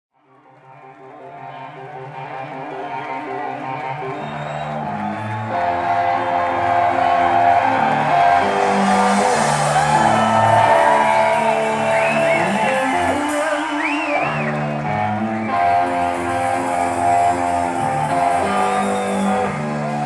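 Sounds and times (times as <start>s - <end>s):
electric guitar rock music: 0.3s - 20.0s.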